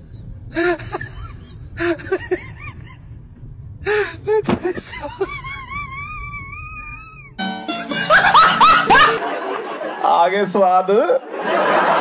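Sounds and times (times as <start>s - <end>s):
person laughing: 0.6s - 3.3s, 3.9s - 7.1s, 7.7s - 9.6s.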